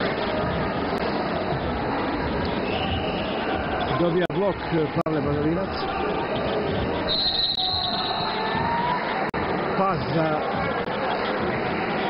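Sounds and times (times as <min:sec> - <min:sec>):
sports hall crowd noise: 0:00.0 - 0:12.0
referee's whistle: 0:02.6 - 0:03.6, 0:07.1 - 0:08.5.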